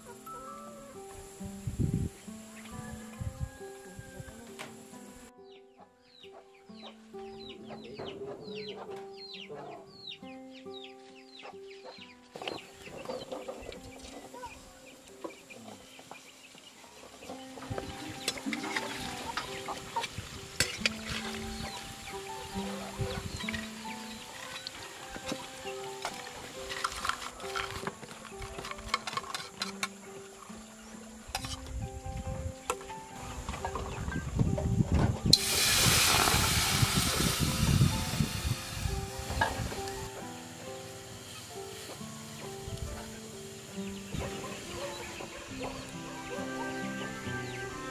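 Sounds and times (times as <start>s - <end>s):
chicken calls: 0.0s - 1.3s, 44.0s - 47.9s
background music: 0.0s - 47.9s
food frying in hot oil: 35.4s - 39.9s.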